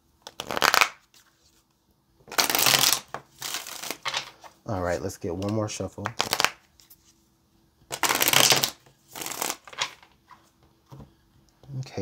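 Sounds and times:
cards being shuffled: 0.2 - 1.6, 2.3 - 4.6, 5.3 - 7.2, 7.9 - 10.2.

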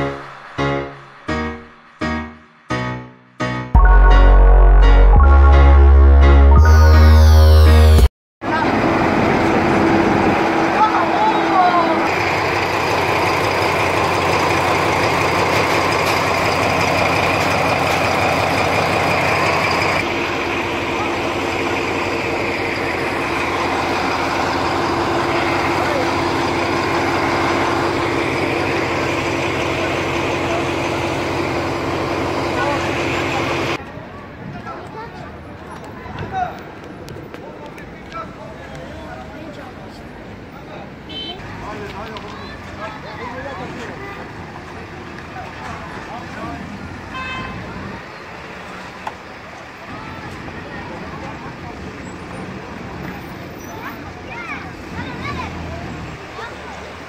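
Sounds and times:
diesel engine idling: 8.7 - 33.8
crowd talking: 10.6 - 12.9, 32.3 - 46.9, 49.4 - 57.0.

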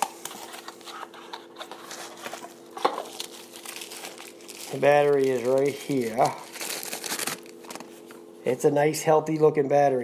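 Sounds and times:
cardboard rustling: 0.0 - 8.0
bubble wrap crinkling: 0.0 - 8.1.

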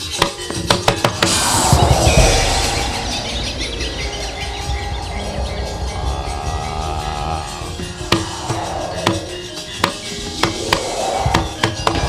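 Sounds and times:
wavering held tone: 1.2 - 12.0
gamelan music: 2.0 - 12.0.

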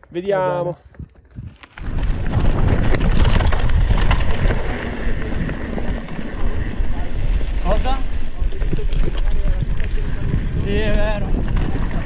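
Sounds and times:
tyres crunching over stones: 0.0 - 12.0
bike rattling: 0.5 - 12.0
wind rumble on microphone: 0.9 - 12.0.

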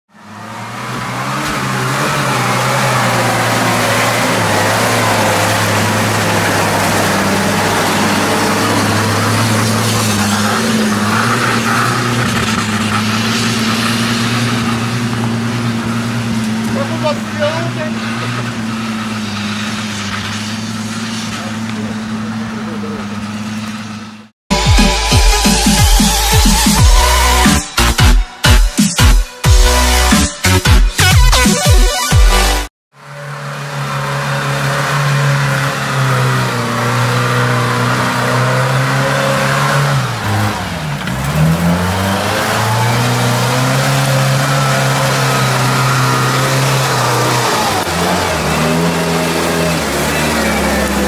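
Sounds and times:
off-road vehicle engine droning: 0.1 - 28.6, 32.4 - 51.0.

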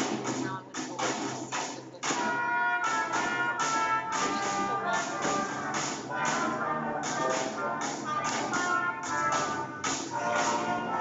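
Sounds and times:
concert band playing: 0.0 - 11.0
sharp percussion hits: 0.0 - 11.0.

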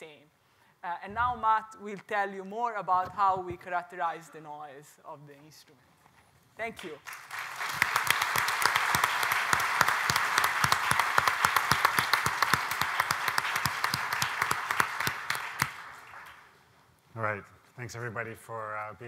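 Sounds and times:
audience applauding: 7.0 - 16.6.

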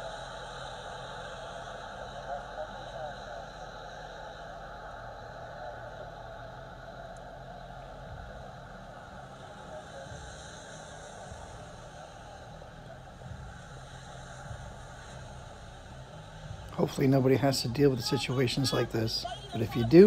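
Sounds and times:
rain hiss: 0.0 - 20.0
street noise: 0.0 - 20.0.

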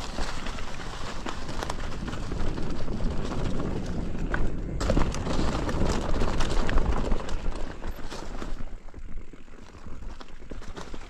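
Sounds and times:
bike rattling: 0.0 - 11.0
tyres crunching through dry leaves: 0.0 - 11.0.

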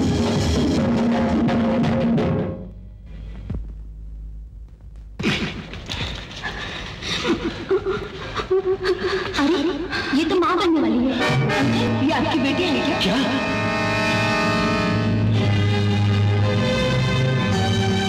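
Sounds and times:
dramatic film score: 5.2 - 18.0.

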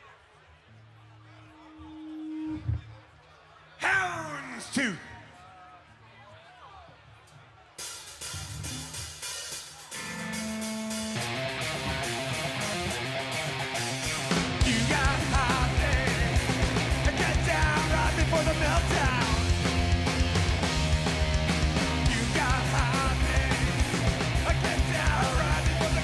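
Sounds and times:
man singing: 3.8 - 5.1, 14.6 - 19.5, 22.0 - 26.0
drums: 6.9 - 26.0
distorted electric guitar: 9.9 - 26.0
bass guitar: 10.0 - 26.0.

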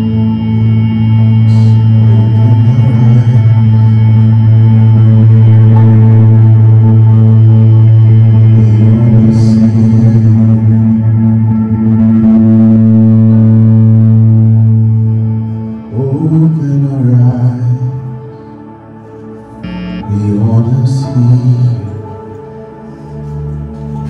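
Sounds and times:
electric bass with ambient effects: 0.0 - 18.0, 19.6 - 21.4.

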